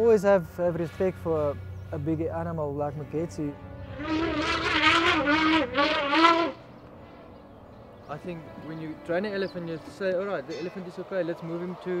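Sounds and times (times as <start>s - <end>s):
elephant trumpeting: 3.8s - 6.6s.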